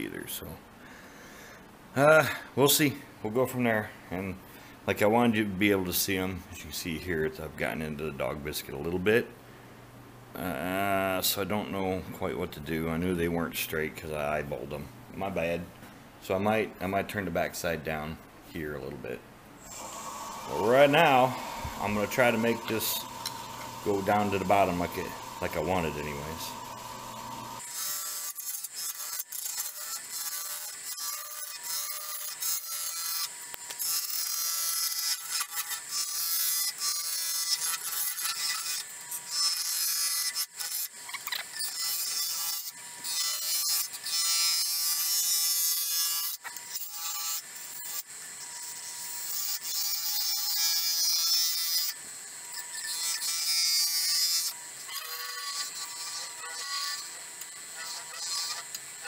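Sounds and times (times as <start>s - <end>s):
lathe humming: 19.6s - 28.3s
gouge scraping on lathe: 19.7s - 28.3s, 55.0s - 58.7s.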